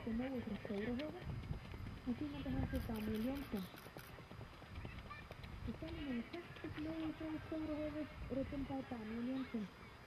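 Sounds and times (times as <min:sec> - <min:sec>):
horse hoofbeats: 0:00.0 - 0:08.9.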